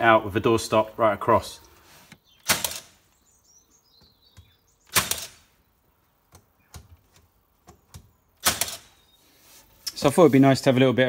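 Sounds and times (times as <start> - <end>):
nail gun firing: 2.4 - 3.0, 4.9 - 5.5, 8.4 - 9.0.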